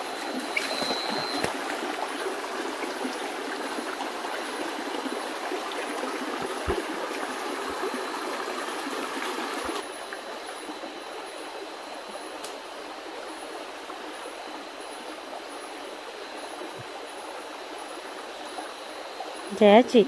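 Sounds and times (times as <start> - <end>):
stream rushing over stones: 0.0 - 10.9.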